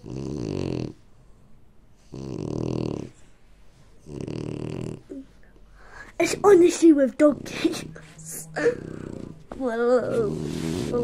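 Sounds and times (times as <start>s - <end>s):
dog snoring: 0.0s - 1.4s, 2.0s - 3.4s, 4.0s - 5.3s, 7.2s - 11.0s.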